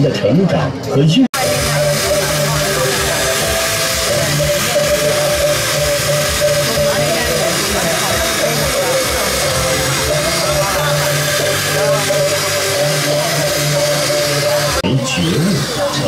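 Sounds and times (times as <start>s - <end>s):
electric drill running in water: 1.4s - 16.0s.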